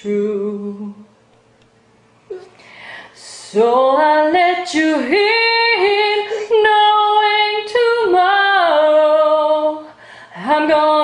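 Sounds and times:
woman singing unaccompanied: 0.0 - 1.2, 3.2 - 11.0.

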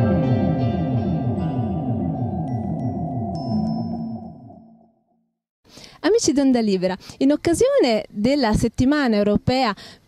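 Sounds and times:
falling low electronic sweeps: 0.0 - 5.0
high pinging tones: 1.0 - 5.3.

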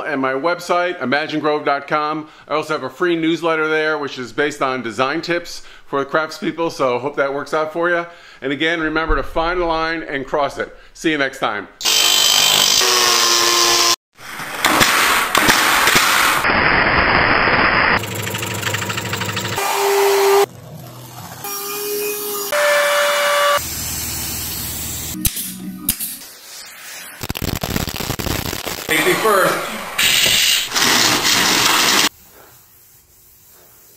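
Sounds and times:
angle grinder cutting wood: 11.8 - 14.0, 19.5 - 20.5
workshop noises: 18.0 - 26.7, 28.9 - 33.9.

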